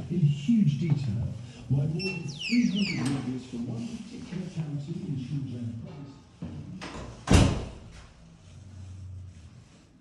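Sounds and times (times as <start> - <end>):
door shutting with bang: 6.9 - 7.9.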